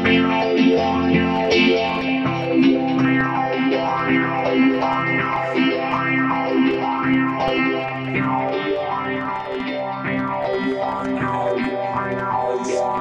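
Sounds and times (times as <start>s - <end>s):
distorted electric guitar: 0.0s - 13.0s
low drone: 0.0s - 13.0s.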